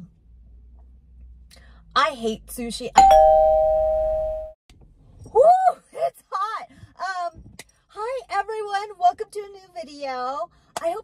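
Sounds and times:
two-note chime: 0:03.0 - 0:04.6.

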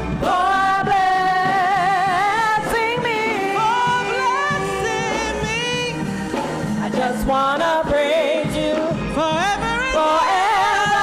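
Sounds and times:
gospel group singing: 0:00.0 - 0:11.0
woman lead singing: 0:00.2 - 0:06.2, 0:06.8 - 0:11.0.

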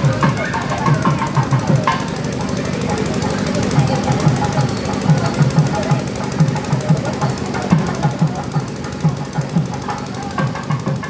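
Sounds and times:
music with fast drum beats: 0:00.0 - 0:11.0.

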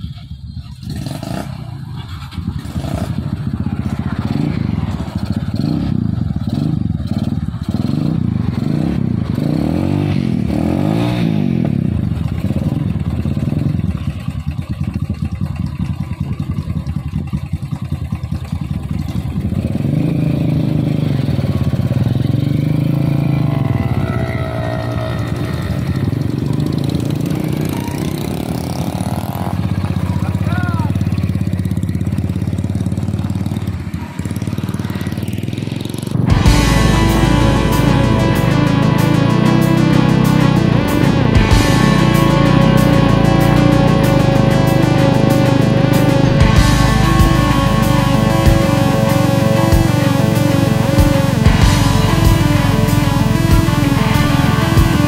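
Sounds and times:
motorcycle engines idling and revving: 0:00.0 - 0:55.0.

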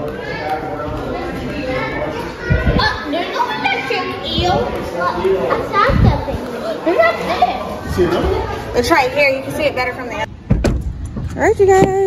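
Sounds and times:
chatter of children and visitors: 0:00.0 - 0:10.4
low thump: 0:10.4 - 0:12.0.

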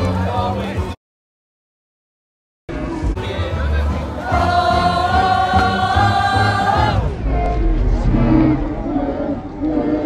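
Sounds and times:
choir singing a long note: 0:04.0 - 0:10.0.

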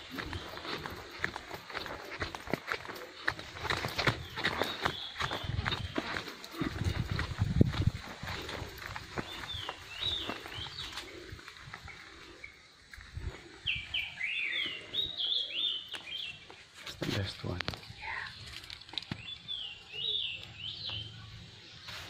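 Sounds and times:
footsteps crunching on leaves: 0:00.0 - 0:12.1
bird chirping: 0:00.0 - 0:12.8, 0:13.6 - 0:16.7, 0:18.0 - 0:22.0.

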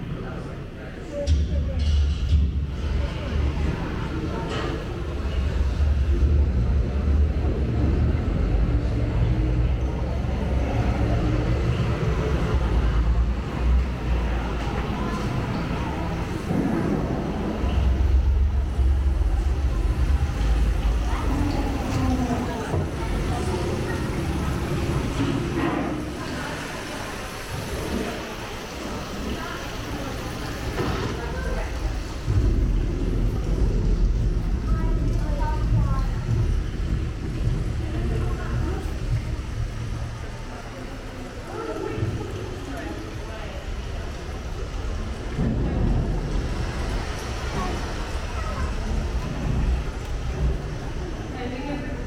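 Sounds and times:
deep steady rumble: 0:02.1 - 0:26.2, 0:31.4 - 0:52.0.

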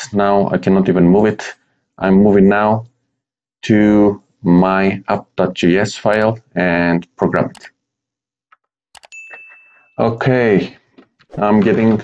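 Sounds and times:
high bell ding: 0:09.0 - 0:10.2.

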